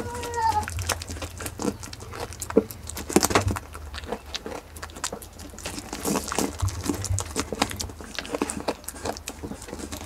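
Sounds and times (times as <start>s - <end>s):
goat chewing fruit rind: 0.0s - 10.0s
steady low hum: 0.0s - 10.0s.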